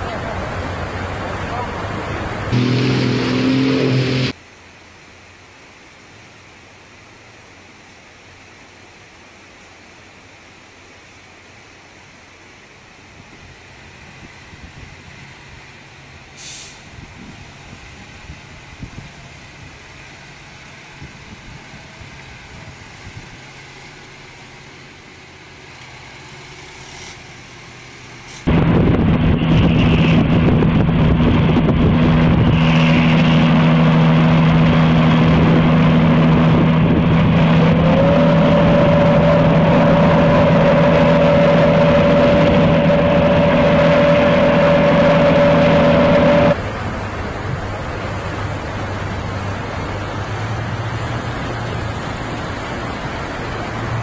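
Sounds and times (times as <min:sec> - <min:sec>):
even rushing noise: 0:00.0 - 0:04.4, 0:16.6 - 0:54.0
truck engine droning: 0:00.0 - 0:04.4, 0:15.2 - 0:54.0.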